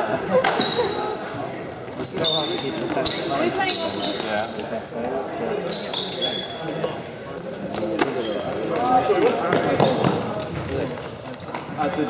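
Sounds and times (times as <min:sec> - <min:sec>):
voices echoing in hall: 0:00.0 - 0:12.0
trainers squeaking on floor: 0:00.4 - 0:09.0, 0:11.3 - 0:12.0.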